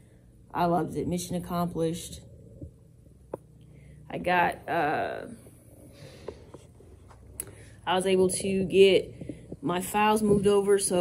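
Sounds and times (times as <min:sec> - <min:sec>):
woman speaking: 0:00.5 - 0:02.3, 0:04.1 - 0:05.4, 0:07.8 - 0:11.0.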